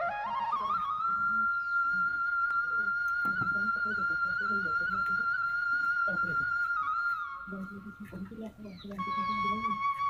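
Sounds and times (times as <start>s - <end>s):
flute-like melody: 0.0s - 10.0s.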